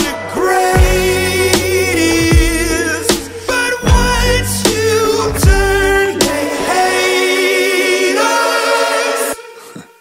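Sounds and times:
choir-like pop vocals: 0:00.0 - 0:10.0.

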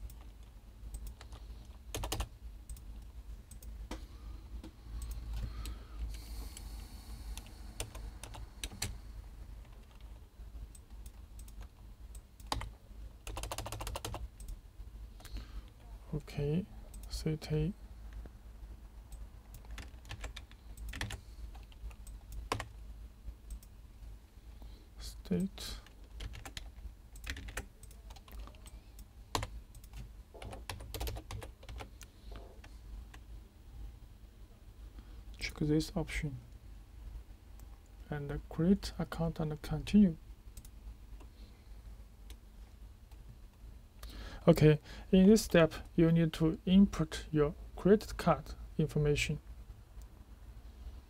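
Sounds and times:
computer keyboard keystrokes: 0:00.0 - 0:04.0, 0:10.7 - 0:14.6, 0:19.1 - 0:22.7, 0:25.8 - 0:32.7
low steady hum: 0:00.0 - 0:51.0.

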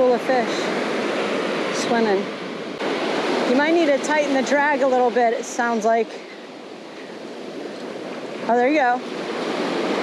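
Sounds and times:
ocean surf breaking: 0:00.0 - 0:10.0.

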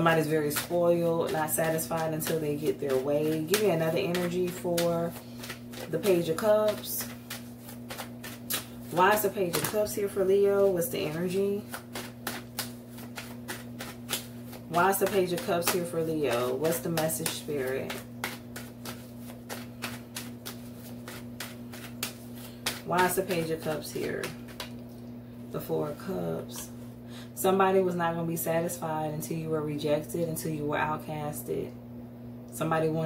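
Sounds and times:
cards being shuffled: 0:00.0 - 0:25.1
steady low hum: 0:00.0 - 0:33.0.

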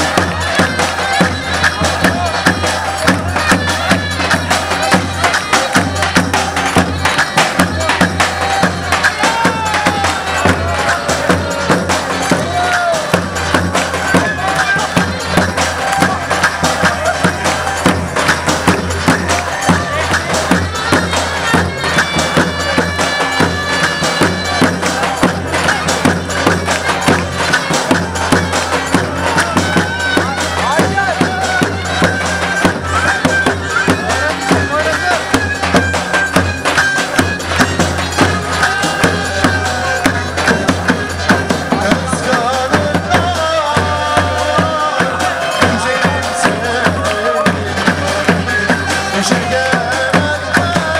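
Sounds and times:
shrill reed melody: 0:00.0 - 0:50.9.

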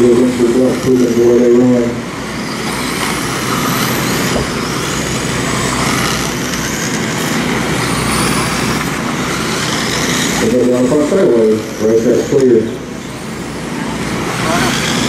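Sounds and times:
cars hissing on dirt: 0:00.0 - 0:15.0
high electric motor whines: 0:00.0 - 0:15.0.

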